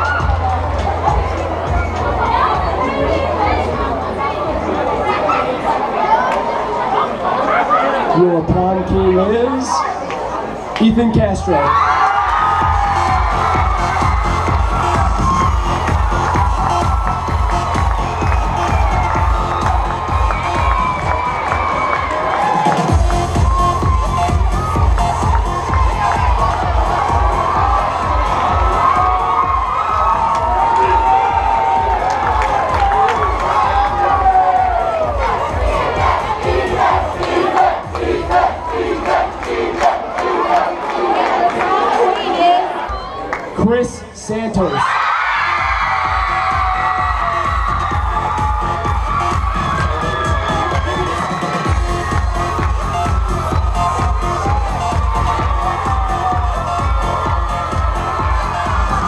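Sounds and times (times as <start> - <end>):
crowd cheering and screaming: 0.0 - 8.2, 9.4 - 43.4, 44.6 - 59.0
dance music bass beat: 12.4 - 39.5, 45.4 - 59.0.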